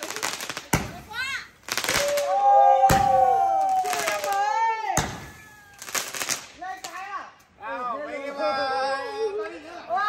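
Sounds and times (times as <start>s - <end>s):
fireworks bangs: 0.0s - 7.1s
people cheering: 1.7s - 6.2s.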